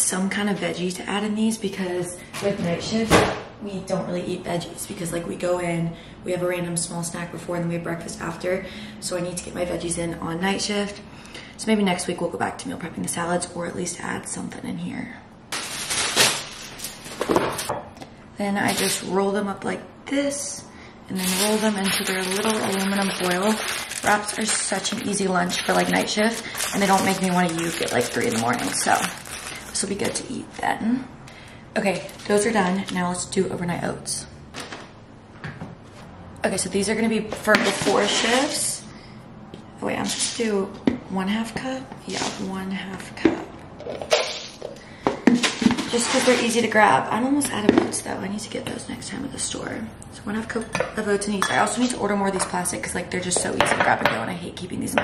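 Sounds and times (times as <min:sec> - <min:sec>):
plastic bag rustling and crinkling: 0:15.5 - 0:17.7, 0:18.6 - 0:19.1, 0:21.2 - 0:30.3, 0:32.0 - 0:32.7.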